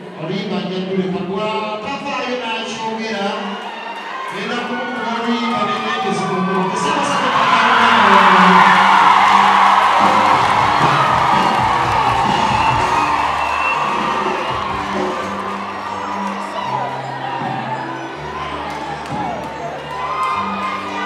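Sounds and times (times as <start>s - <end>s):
music playing: 0.0s - 21.0s
audience cheering and shouting: 2.7s - 21.0s.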